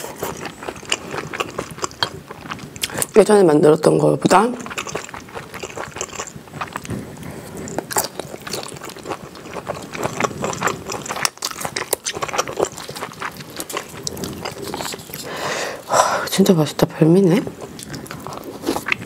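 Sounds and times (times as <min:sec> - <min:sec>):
chewing food: 0:00.0 - 0:19.0.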